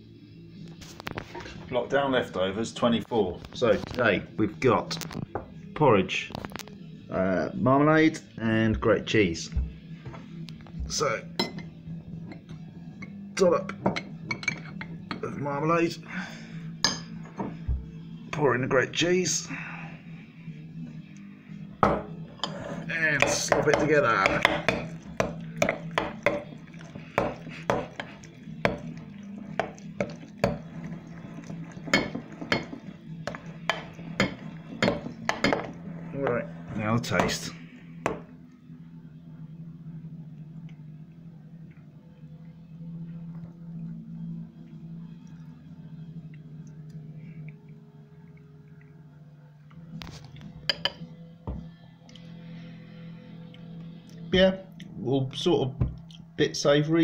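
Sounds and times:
steady low hum: 6.6s - 57.0s
spoon clinking against bowl: 11.4s - 15.2s, 31.8s - 35.8s, 50.6s - 51.0s
spoon scraping thick porridge: 22.2s - 37.4s.

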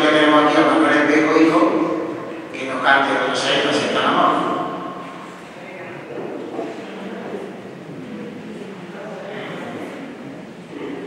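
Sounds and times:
murmur of people echoing: 0.0s - 11.0s.

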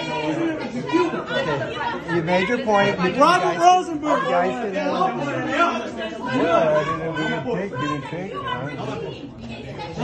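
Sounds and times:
people talking over one another: 0.0s - 10.0s.

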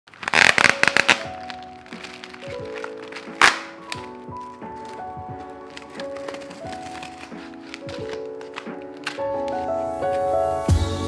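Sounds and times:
plastic pouch crinkling: 0.1s - 10.4s
background music with sustained notes: 0.1s - 11.0s.

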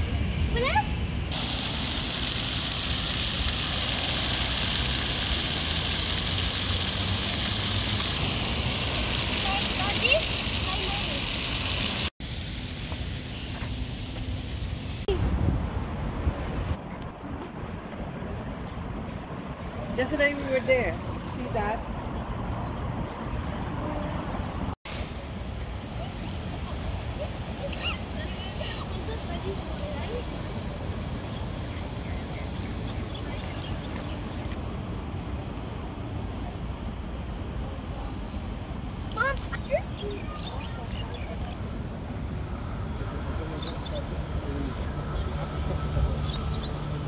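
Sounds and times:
fountain water jets splashing: 0.5s - 15.2s, 24.9s - 42.4s.

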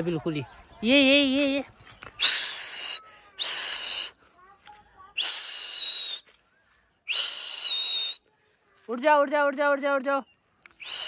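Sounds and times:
person whistling high: 2.2s - 4.2s, 5.2s - 6.3s, 7.1s - 8.2s, 10.8s - 11.0s.

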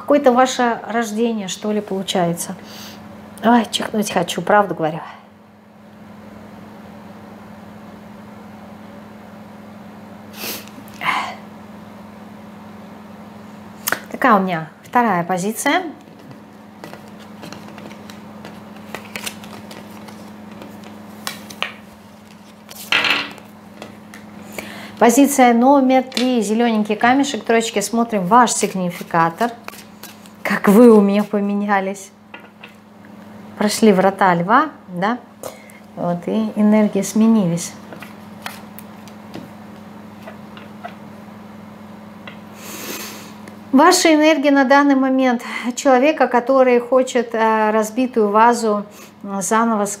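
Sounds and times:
steady low hum: 0.0s - 50.0s
cards rustling: 16.0s - 24.7s, 28.5s - 31.4s, 37.8s - 41.0s.

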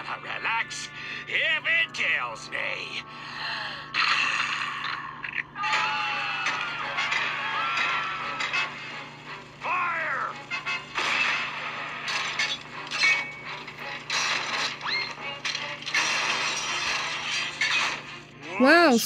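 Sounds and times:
music: 0.0s - 19.0s.

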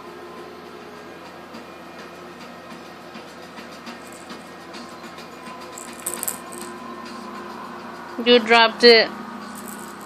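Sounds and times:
baby rattle shaking: 4.0s - 4.6s, 5.8s - 6.8s, 9.5s - 10.0s.

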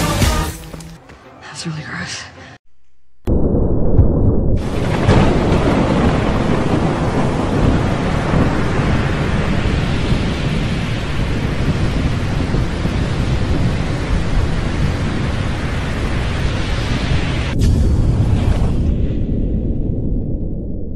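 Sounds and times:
deep rumbling noise: 3.3s - 20.9s.

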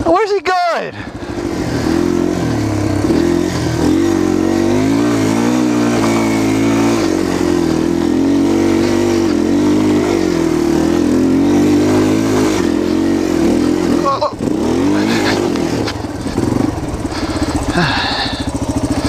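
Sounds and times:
motorcycle engine revving: 0.9s - 19.0s.

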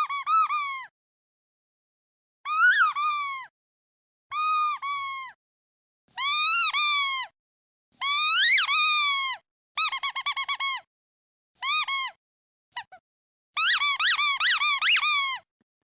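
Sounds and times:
rubber duck squeaking: 0.0s - 0.9s, 2.5s - 3.5s, 6.2s - 7.3s, 8.0s - 10.9s, 11.6s - 12.2s, 13.6s - 15.5s.

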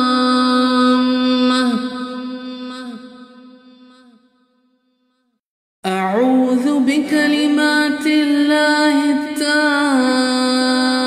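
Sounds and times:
person chanting: 0.0s - 4.2s, 5.9s - 11.0s.

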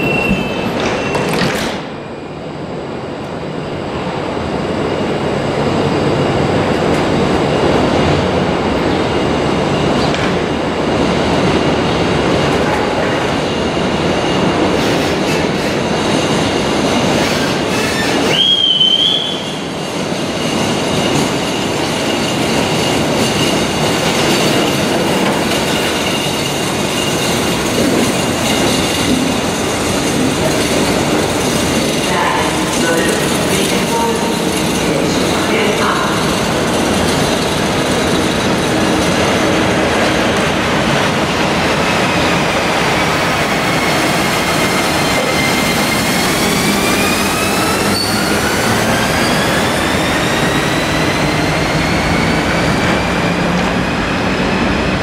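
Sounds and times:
rising wheel squeal: 0.0s - 1.5s, 17.1s - 23.5s, 43.4s - 53.1s
train wheels rumbling on rails: 0.0s - 55.0s.

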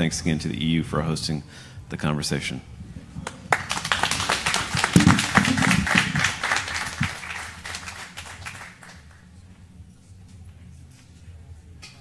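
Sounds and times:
audience applauding: 3.5s - 9.2s.

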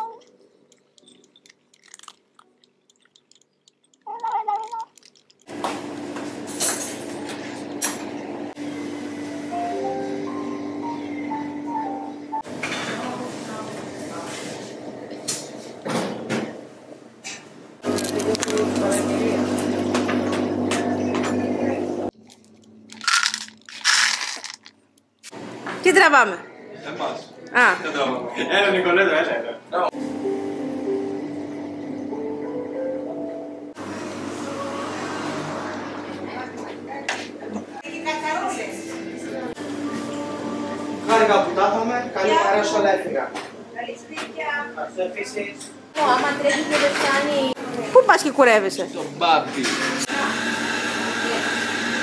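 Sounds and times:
cat crunching food: 0.1s - 5.5s, 17.8s - 18.8s, 22.2s - 24.7s
cat mewing: 4.1s - 5.0s.

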